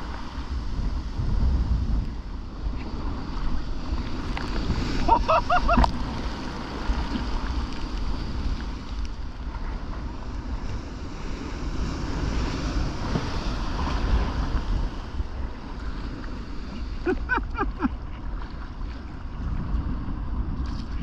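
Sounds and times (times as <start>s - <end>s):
waves breaking and surf churning: 0.0s - 21.0s
wind buffeting microphone: 0.0s - 21.0s.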